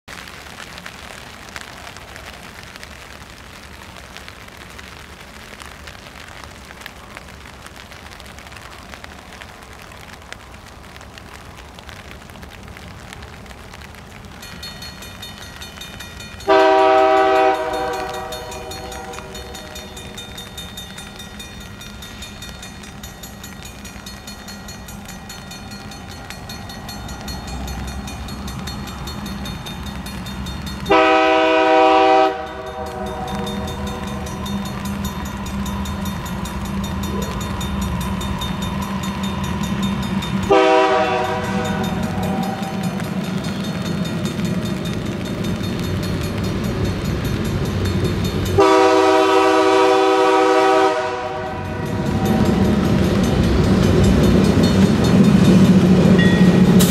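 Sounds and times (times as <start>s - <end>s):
diesel locomotive rumble: 11.1s - 56.9s
train air horn blasts: 16.5s - 19.8s, 30.9s - 34.3s, 40.4s - 43.0s, 48.6s - 52.8s.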